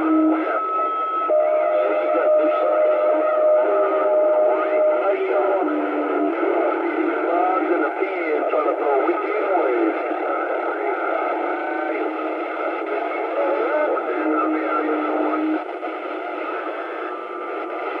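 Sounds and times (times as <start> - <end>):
faint garbled voices: 0.0 - 18.0
radio static noise: 0.0 - 18.0.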